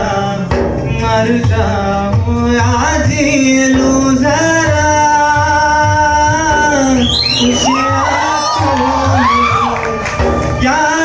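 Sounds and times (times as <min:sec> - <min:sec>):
backing music with steady beat: 0:00.0 - 0:11.0
audience whooping and whistling: 0:06.8 - 0:10.7.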